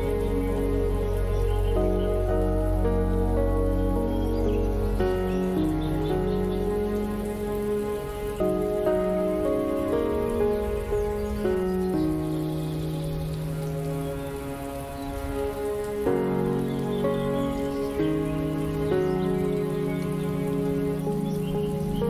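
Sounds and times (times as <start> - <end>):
calm instrumental relaxation music: 0.0 - 22.0
rain-like water hiss: 0.0 - 22.0.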